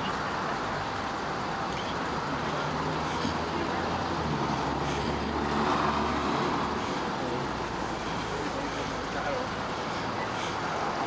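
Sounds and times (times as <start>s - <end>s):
traffic wash: 0.0s - 11.0s
vehicle engine hum: 0.0s - 11.0s.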